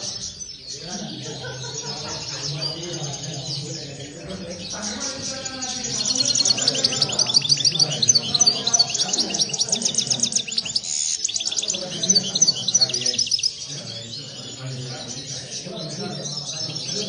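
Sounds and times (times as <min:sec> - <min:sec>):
goldfinches twittering: 0:00.0 - 0:17.0.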